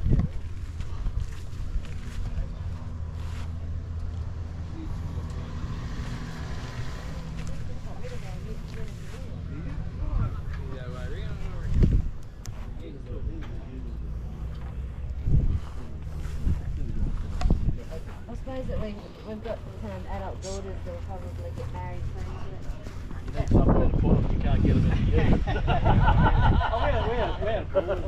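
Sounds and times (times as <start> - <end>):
low engine rumble: 0.0 - 28.0
people talking: 7.4 - 28.0.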